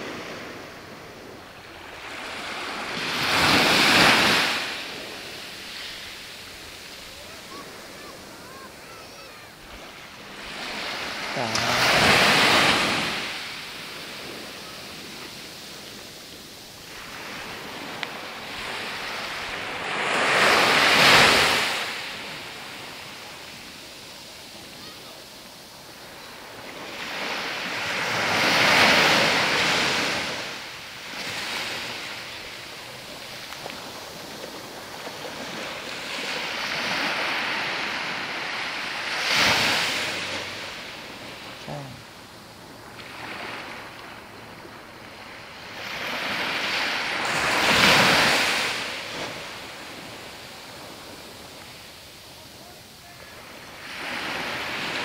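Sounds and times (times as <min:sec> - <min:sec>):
small waves breaking on beach: 0:00.0 - 0:55.0.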